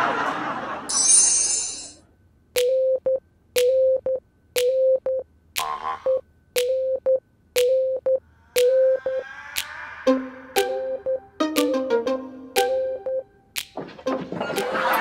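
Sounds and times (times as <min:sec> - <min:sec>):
quick blips: 0:02.6 - 0:05.2, 0:06.1 - 0:09.2, 0:10.1 - 0:14.8
comic background music: 0:10.1 - 0:15.0.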